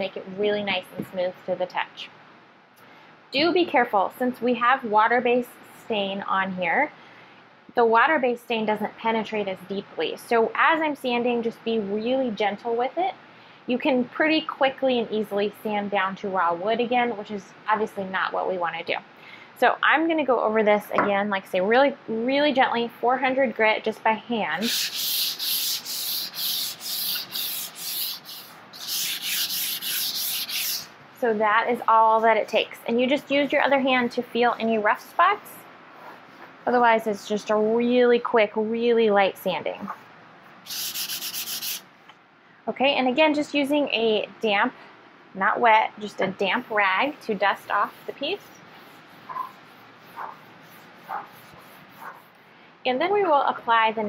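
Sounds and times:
sandpaper rubbing on wood: 24.6s - 30.9s, 40.7s - 41.8s, 47.4s - 52.3s.

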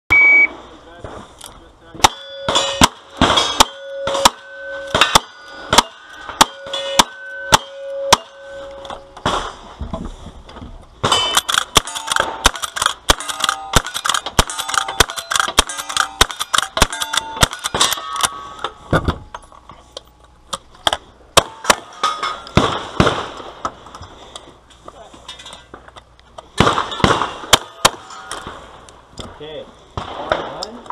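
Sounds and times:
shot timer beep: 0.1s - 0.5s
shotgun blasts: 2.0s - 8.6s, 11.0s - 18.4s, 22.5s - 23.6s, 26.6s - 28.7s
steel plate ringing: 2.0s - 9.3s, 13.1s - 19.6s, 21.4s - 22.6s, 26.9s - 28.5s
gunshots: 2.0s - 9.7s, 11.0s - 18.4s, 21.4s - 23.5s, 26.6s - 28.8s, 30.0s - 30.6s.

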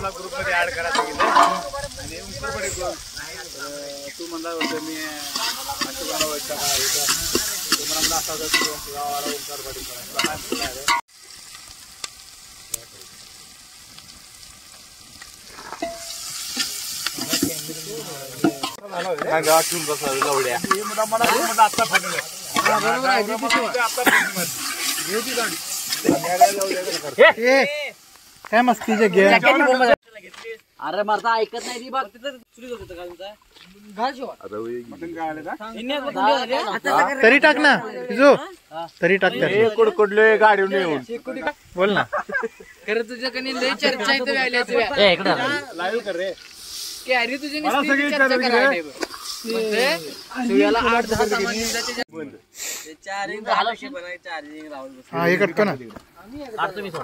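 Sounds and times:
people's voices: 0.0s - 11.0s, 17.1s - 57.0s
onions sizzling in a pot: 0.0s - 57.0s
ladle stirring: 0.9s - 1.7s, 4.4s - 11.0s, 15.5s - 27.1s.

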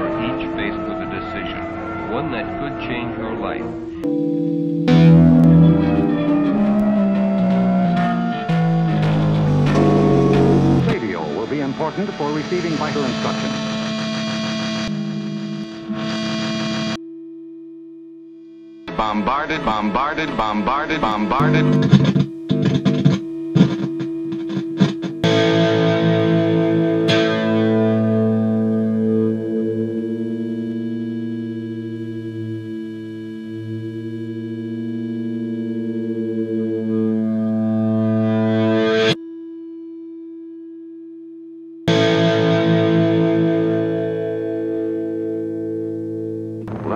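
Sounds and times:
distorted soundtrack music: 0.0s - 17.0s, 18.9s - 39.2s
steady electronic tone: 3.8s - 18.9s, 21.3s - 40.8s
held chord: 4.0s - 17.0s, 41.9s - 46.7s.

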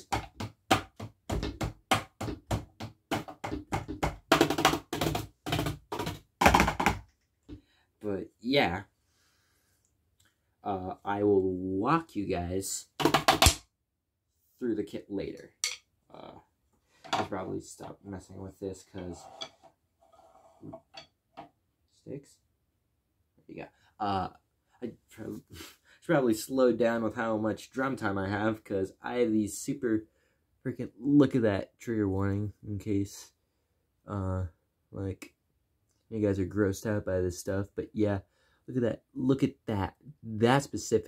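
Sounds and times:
drumsticks tapping drum pads: 0.0s - 7.1s, 13.0s - 13.6s.

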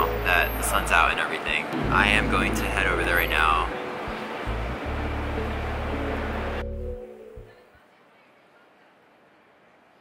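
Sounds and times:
street noise with low rumble: 0.0s - 10.0s
background music: 1.8s - 7.6s.

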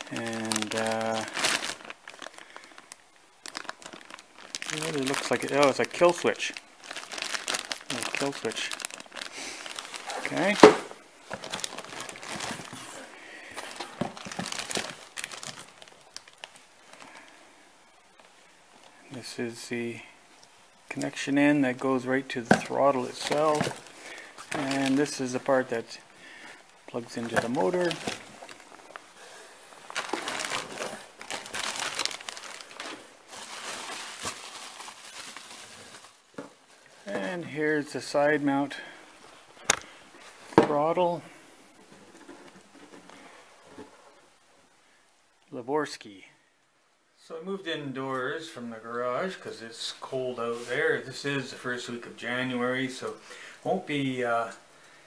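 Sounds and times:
plastic bags crinkling: 0.0s - 17.3s, 20.9s - 41.2s.

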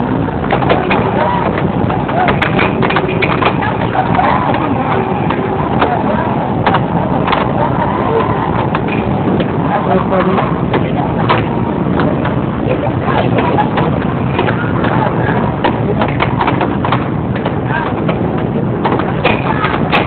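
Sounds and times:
crowd voices: 0.0s - 20.0s
air hockey puck clacks: 0.4s - 9.6s, 10.2s - 12.4s, 13.1s - 20.0s.

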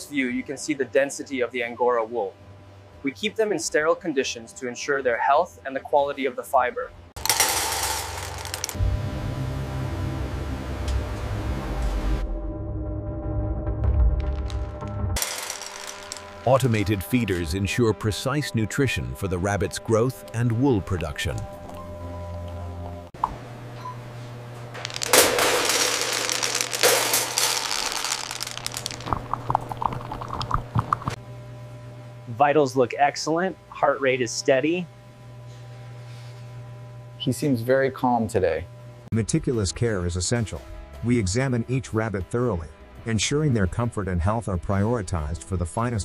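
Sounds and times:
feed pellets rattling into metal tray: 7.2s - 8.8s, 14.2s - 17.5s, 24.8s - 30.3s
steady low drone: 7.2s - 23.1s.

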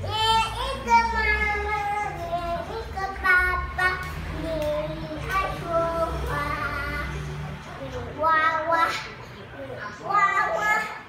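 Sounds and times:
girl singing: 0.0s - 9.2s.

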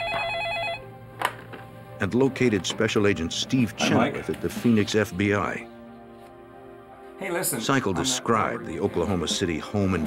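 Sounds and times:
warbling telephone ring: 0.0s - 0.8s.

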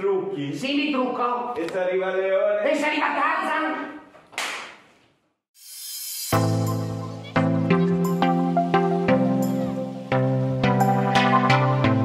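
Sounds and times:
music: 6.2s - 12.0s.

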